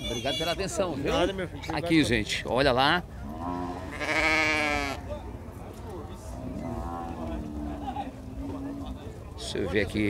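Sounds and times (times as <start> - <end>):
sheep bleating: 3.4 - 5.0.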